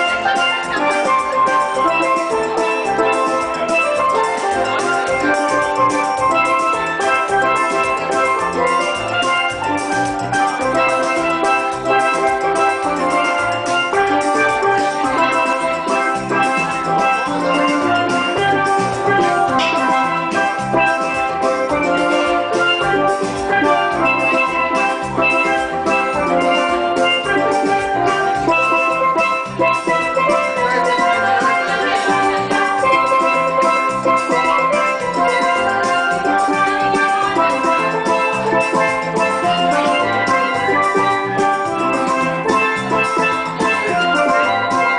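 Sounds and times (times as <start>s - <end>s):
steel pans playing melody: 0.0s - 44.9s.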